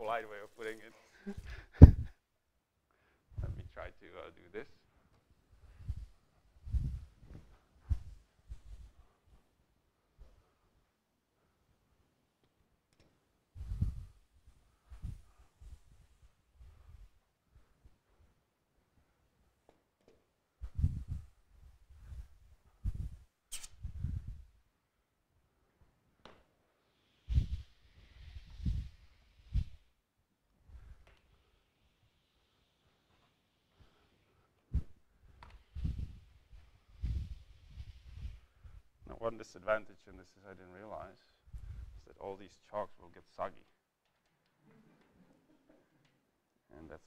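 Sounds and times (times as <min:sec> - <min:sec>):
hiss of wet wiping: 0:13.5 - 0:18.3, 0:26.6 - 0:30.0, 0:30.7 - 0:39.3
short sharp hiss: 0:23.5 - 0:24.2
wet sponge wiping chalkboard: 0:26.8 - 0:29.9, 0:35.6 - 0:38.8.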